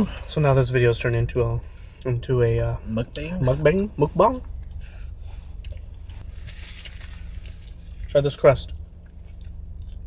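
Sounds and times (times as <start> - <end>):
low hum inside car cabin: 0.0 - 10.0
people chewing food: 4.4 - 8.1, 8.7 - 10.0.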